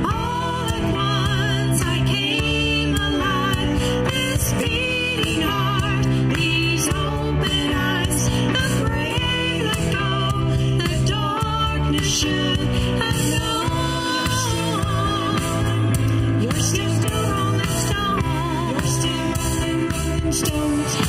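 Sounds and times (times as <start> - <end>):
band playing: 0.0 - 21.0
women singing worship song: 0.0 - 21.0.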